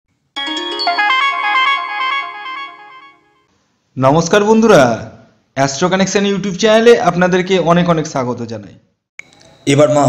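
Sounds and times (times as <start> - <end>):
electronic chime jingle: 0.4 - 3.4.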